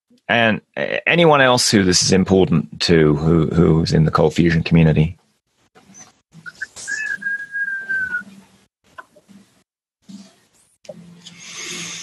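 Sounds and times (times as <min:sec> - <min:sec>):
high whistle-like tone: 0:06.0 - 0:08.3.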